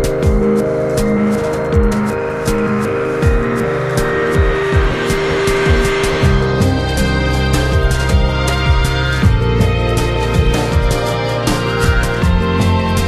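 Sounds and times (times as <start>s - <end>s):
electronic music with kick drum: 0.0s - 13.0s.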